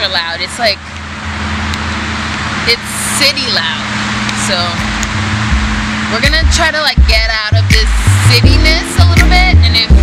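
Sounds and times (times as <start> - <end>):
highway traffic rushing: 0.0 - 10.0.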